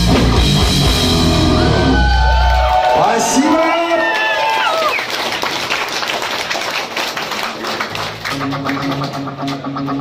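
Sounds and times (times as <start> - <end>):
electric guitar riff: 0.0 - 2.4, 8.1 - 10.0
crowd noise: 0.9 - 10.0
audience clapping: 2.0 - 10.0.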